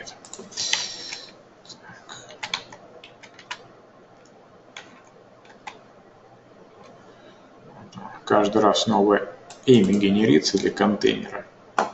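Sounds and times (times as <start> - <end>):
computer keyboard keystrokes: 0.2 - 1.3, 2.2 - 3.6, 4.2 - 5.8, 9.5 - 10.1.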